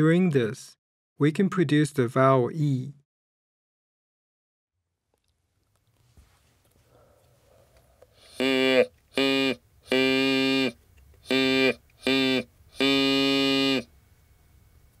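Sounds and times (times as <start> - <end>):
artificial larynx ee vowel: 8.2 - 13.9.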